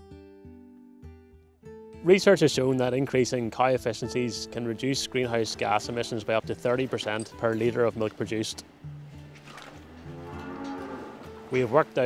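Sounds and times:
soft background music: 0:00.0 - 0:12.0
cows mooing: 0:09.8 - 0:11.8.

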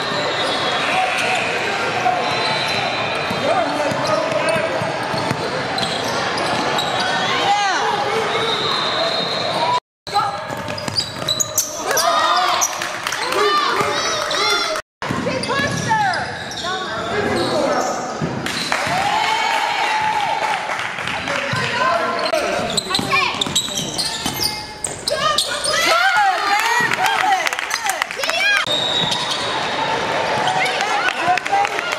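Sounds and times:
sneaker squeaks: 0:02.2 - 0:07.5, 0:08.1 - 0:12.8, 0:15.1 - 0:18.8, 0:21.6 - 0:26.8, 0:28.6 - 0:29.7
sneakers squeaking on hardwood: 0:08.5 - 0:12.7, 0:21.6 - 0:27.0
basketball bouncing on gym floor: 0:10.1 - 0:11.6, 0:22.6 - 0:25.3
voices in a hall: 0:19.9 - 0:31.9
people calling out: 0:22.4 - 0:28.7.

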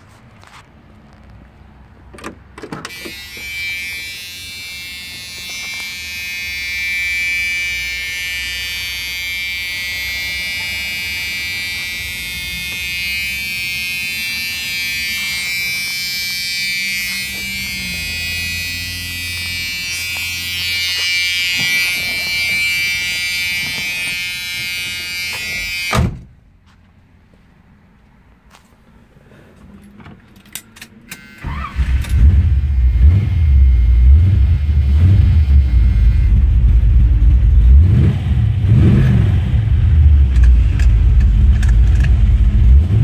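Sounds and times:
car warning buzzer: 0:02.8 - 0:26.2, 0:31.1 - 0:38.1.

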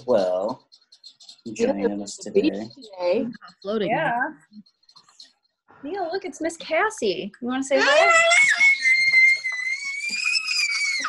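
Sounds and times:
baby squealing: 0:07.7 - 0:11.0.

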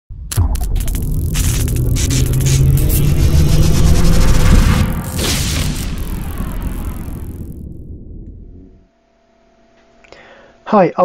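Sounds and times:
electric hum and rumble: 0:00.1 - 0:10.0
electric crackling: 0:00.2 - 0:08.7.

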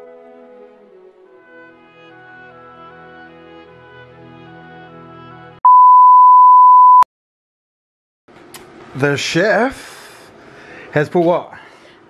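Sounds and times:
steady electronic beep: 0:05.6 - 0:07.0.

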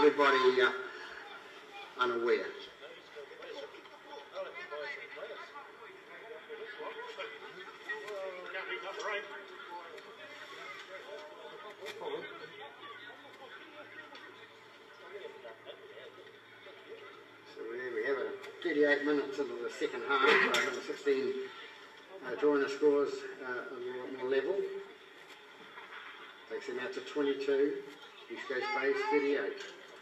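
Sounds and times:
indistinct chatter of voices: 0:00.0 - 0:30.0.

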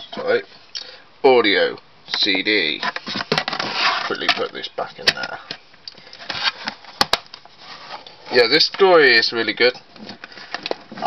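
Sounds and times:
plastic cases rubbing and scraping: 0:02.7 - 0:09.0, 0:09.9 - 0:11.0.

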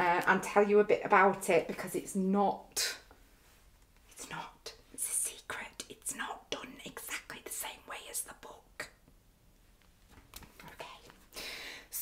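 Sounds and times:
woman whispering: 0:04.1 - 0:09.0, 0:10.6 - 0:11.2.

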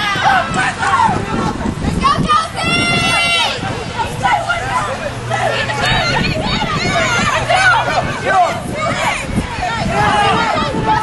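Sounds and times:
voices shouting over one another: 0:00.0 - 0:11.0.

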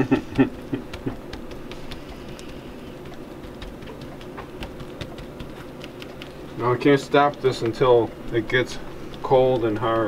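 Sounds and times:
crackly patter of wet ticks: 0:00.7 - 0:10.0.

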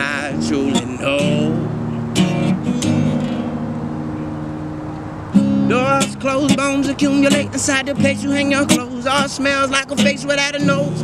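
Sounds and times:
strummed acoustic guitar chord: 0:00.0 - 0:11.0.

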